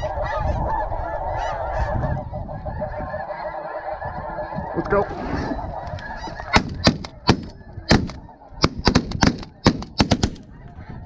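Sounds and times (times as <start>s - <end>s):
geese calling: 0.0s - 11.0s
shotgun shots: 6.5s - 10.4s.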